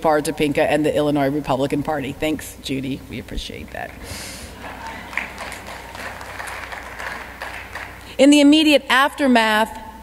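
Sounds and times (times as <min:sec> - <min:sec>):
low steady hum: 0:00.0 - 0:10.0
crowd noise: 0:04.4 - 0:08.2
light scattered applause: 0:04.6 - 0:08.1.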